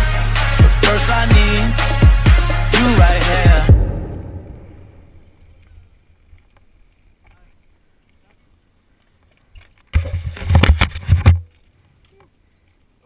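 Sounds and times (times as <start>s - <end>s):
faint low wind rumble: 3.5s - 9.0s
camera rubbing and knocking: 9.8s - 11.5s.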